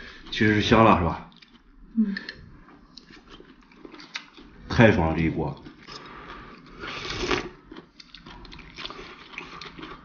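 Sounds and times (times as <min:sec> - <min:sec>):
person slurping food: 0:05.9 - 0:07.6.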